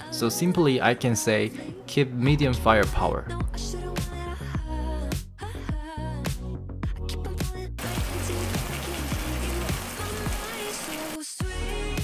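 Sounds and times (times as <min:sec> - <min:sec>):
background music with a beat: 0:01.5 - 0:12.0.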